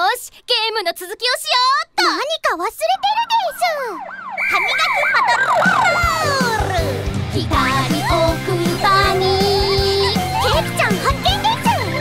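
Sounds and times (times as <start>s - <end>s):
cartoon siren wailing: 2.8s - 7.0s
children's song music with beat: 6.0s - 12.0s.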